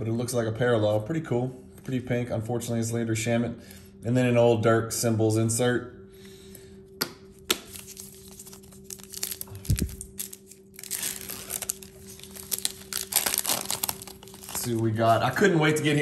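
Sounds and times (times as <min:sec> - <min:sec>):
foil wrapper crinkling and tearing: 0:07.6 - 0:15.5.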